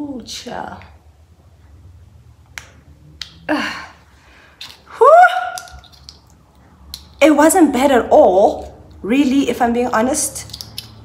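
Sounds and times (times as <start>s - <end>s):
woman's high-pitched cry: 4.9s - 5.6s.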